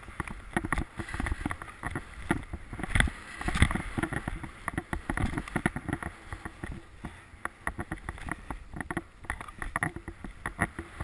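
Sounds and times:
skis scraping over snow: 0.0 - 11.0.

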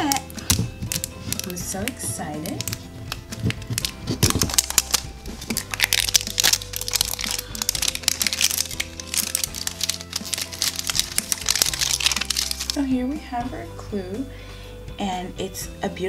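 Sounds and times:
plastic wrapping crinkling: 0.0 - 12.8
background music: 0.0 - 16.0.

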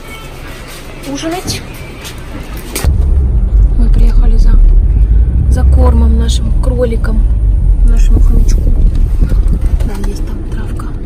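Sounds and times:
car cabin rumble: 2.8 - 11.0.

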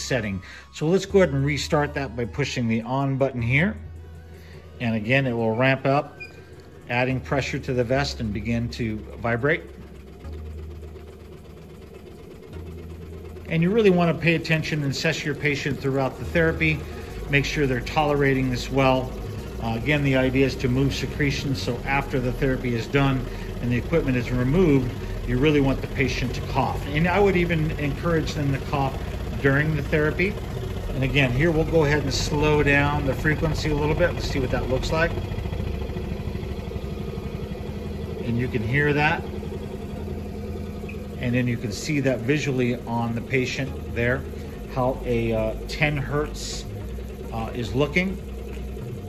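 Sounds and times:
air pulse machine droning: 0.0 - 49.0.

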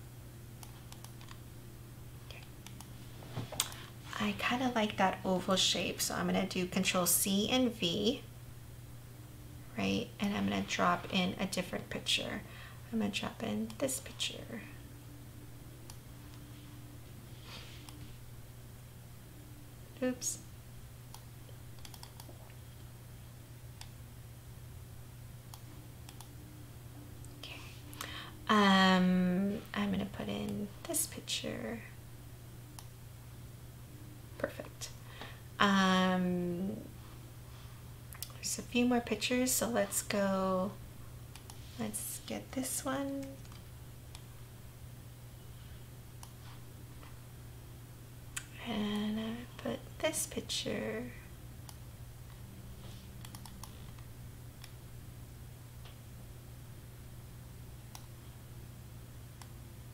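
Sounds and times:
steady low hum: 0.0 - 59.9
computer mouse clicks: 0.6 - 1.4, 21.1 - 22.4, 25.5 - 26.3, 43.2 - 44.2, 53.2 - 54.8, 57.9 - 58.1.

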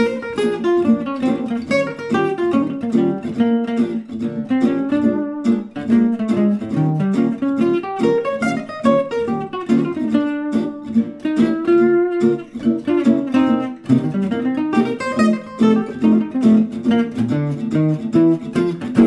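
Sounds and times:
jazz guitar solo: 0.0 - 19.0.

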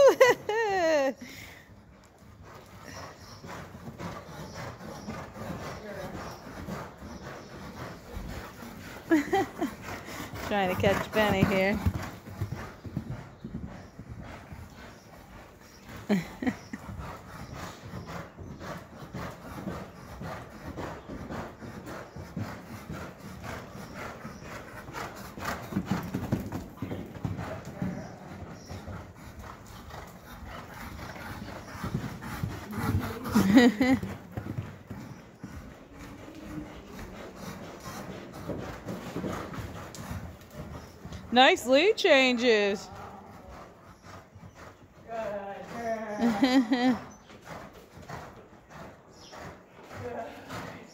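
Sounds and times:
horse hoofbeats on dirt: 0.0 - 50.9.

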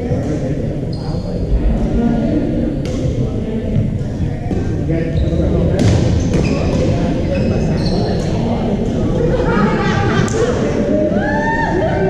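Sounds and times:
chatter of players: 0.0 - 12.0.

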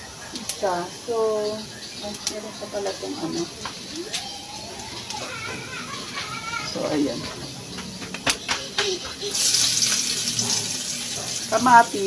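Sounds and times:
tomatoes sizzling in hot oil: 9.2 - 12.0.

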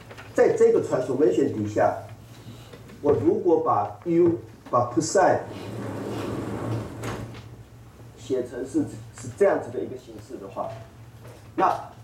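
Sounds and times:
chalkboard panels sliding: 5.4 - 7.4.

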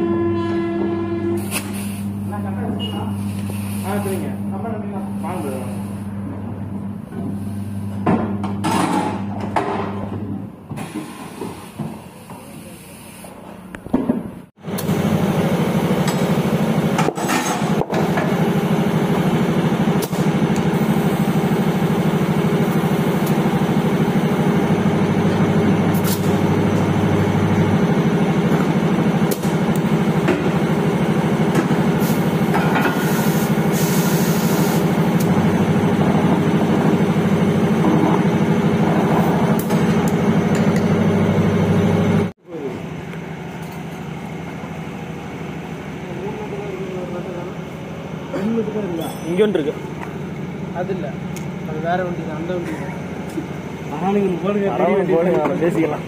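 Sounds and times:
air compressor running: 0.0 - 56.0
air hissing through hose: 3.2 - 4.2, 32.0 - 35.0.

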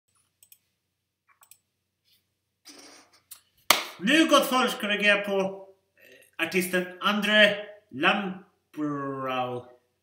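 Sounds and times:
rustle or scrape on desk: 2.0 - 3.2.

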